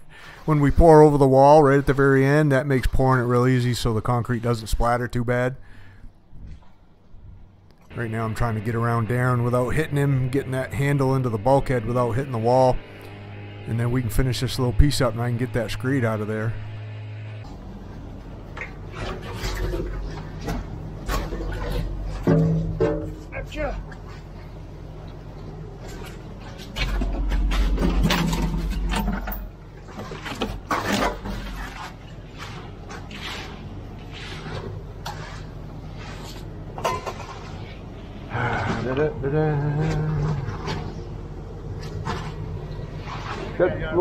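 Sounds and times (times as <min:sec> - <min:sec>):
truck engine rumbling: 0:07.9 - 0:44.0
concrete scraping in chute: 0:25.8 - 0:41.1, 0:41.8 - 0:44.0.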